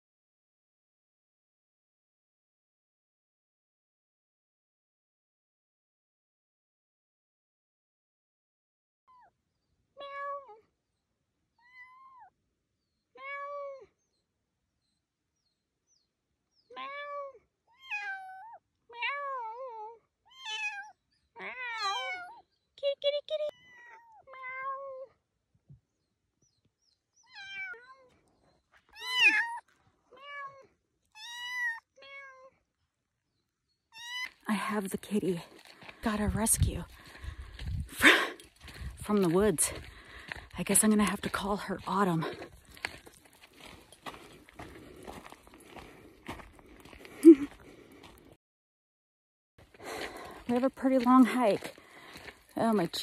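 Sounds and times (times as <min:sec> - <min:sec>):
kitten meowing: 0:29.0 - 0:29.6.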